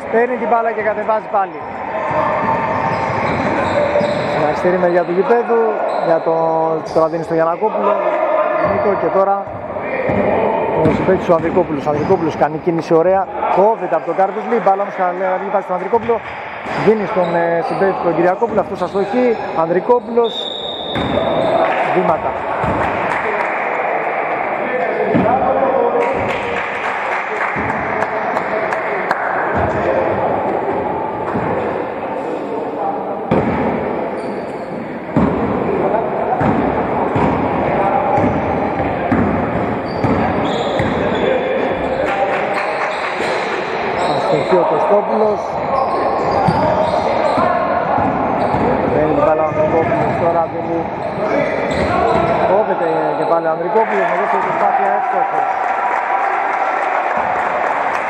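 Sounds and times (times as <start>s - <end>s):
players calling out: 0.8s - 12.6s, 13.2s - 58.0s
basketball bouncing on hardwood: 38.2s - 41.0s.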